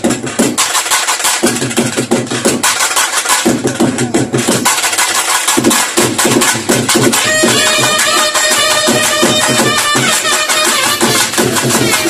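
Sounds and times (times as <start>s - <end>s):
fast barrel drumming: 0.0s - 12.0s.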